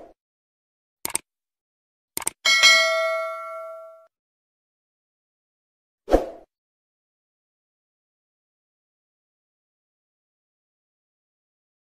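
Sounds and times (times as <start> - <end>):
notification bell ding: 2.5 - 4.1.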